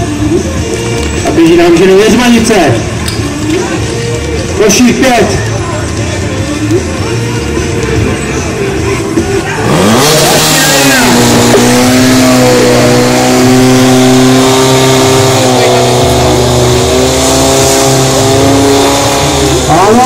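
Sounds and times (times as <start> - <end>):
fire pump engine revving: 6.6 - 20.0.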